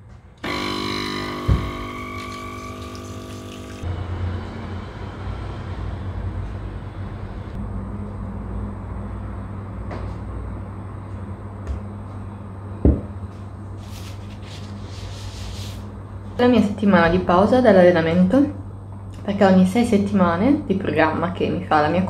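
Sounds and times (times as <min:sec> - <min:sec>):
espresso machine pump buzzing: 0:00.4 - 0:03.9.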